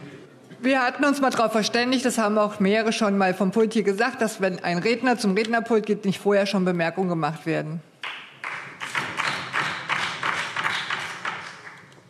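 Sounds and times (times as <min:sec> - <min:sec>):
people clapping in a hall: 0:08.0 - 0:12.0.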